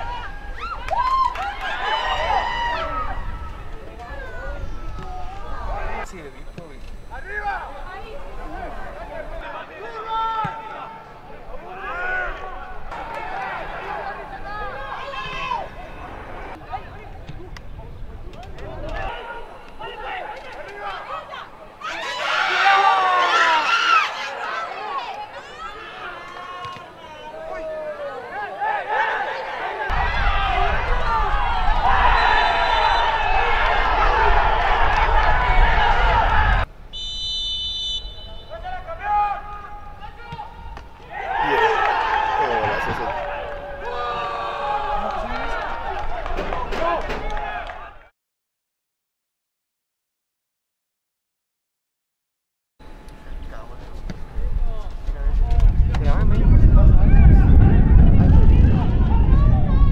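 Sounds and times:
stadium crowd noise: 0.0 - 48.1, 52.8 - 59.9
man talking: 5.9 - 7.7.

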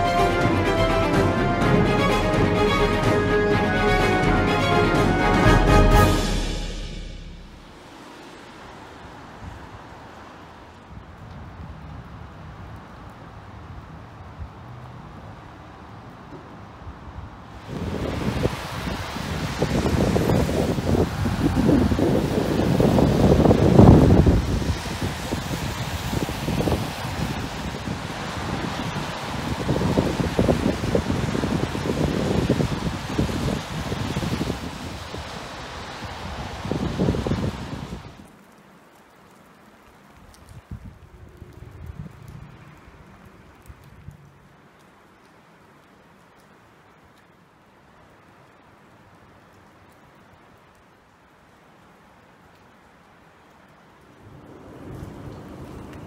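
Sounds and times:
wind buffeting microphone: 16.5 - 38.3, 40.2 - 44.3, 54.0 - 56.0.

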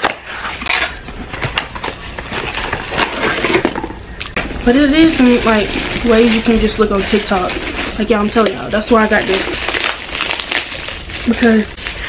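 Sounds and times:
packaging crinkling: 0.0 - 12.0.

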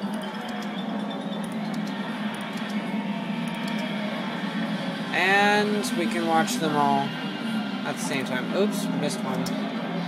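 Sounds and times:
jumble of video soundtracks: 0.0 - 10.0.

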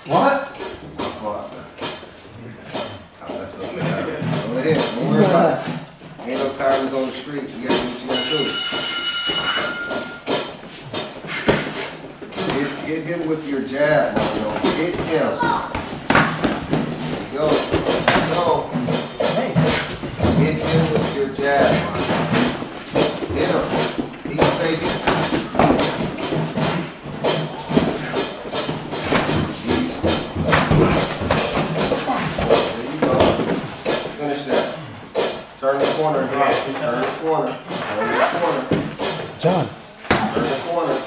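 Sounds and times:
bare feet shuffling on mats: 0.6 - 41.0.

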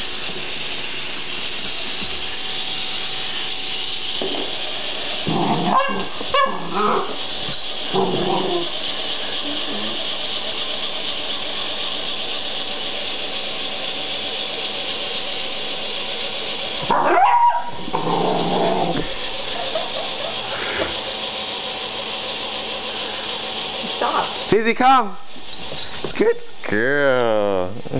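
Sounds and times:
dog barking: 5.6 - 7.1, 16.9 - 17.8
dog low vocal sound: 7.9 - 8.7.

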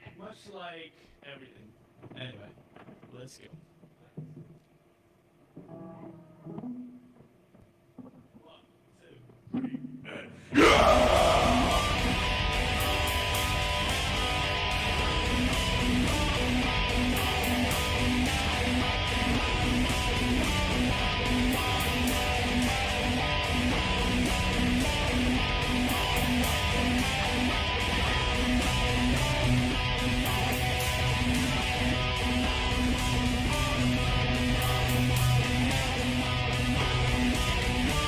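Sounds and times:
heavy electric guitars: 10.5 - 38.0
metal band playing: 10.6 - 38.0.

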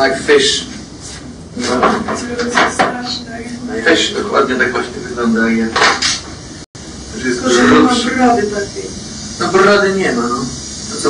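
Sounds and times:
woman talking: 1.6 - 3.8.

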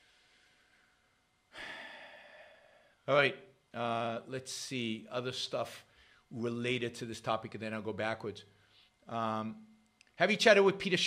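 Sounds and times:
man sighing: 1.5 - 2.9.

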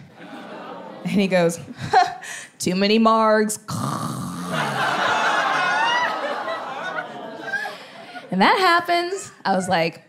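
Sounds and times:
audience laughing: 0.0 - 2.2, 4.4 - 9.8.

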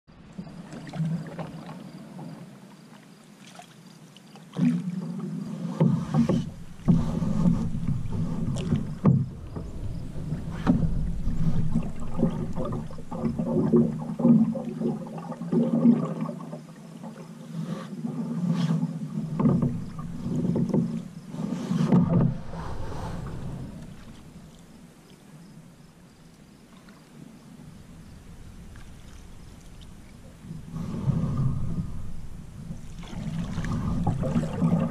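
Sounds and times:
paddle strokes in water: 0.4 - 34.9
low rumble through hull: 5.2 - 15.1, 18.8 - 26.0, 27.7 - 34.9
knocks on canoe hull: 5.8 - 9.7.

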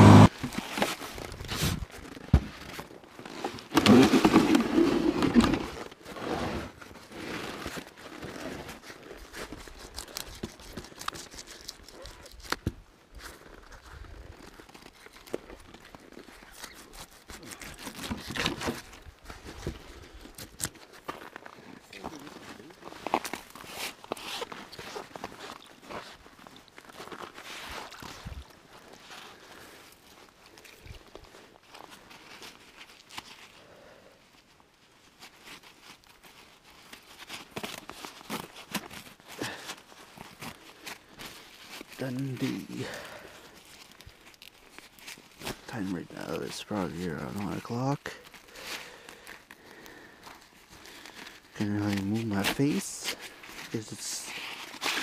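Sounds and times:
gloved hands handling frozen fish: 6.8 - 55.0.

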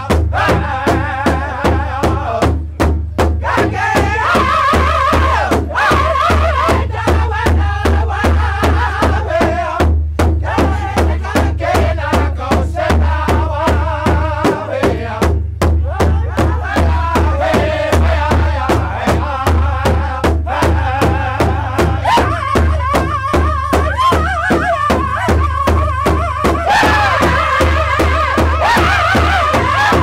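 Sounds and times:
group singing in unison: 0.0 - 2.6, 3.4 - 30.0
large drum beating: 0.0 - 30.0.

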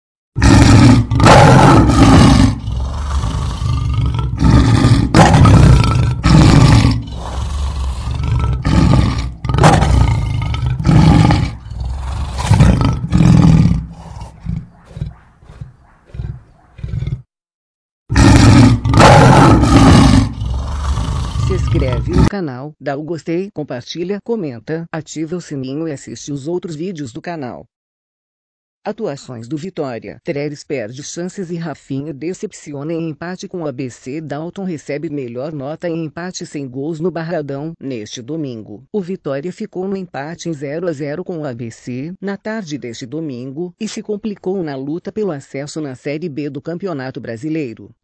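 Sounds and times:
lion roaring and grunting: 0.4 - 17.3, 18.1 - 22.3.

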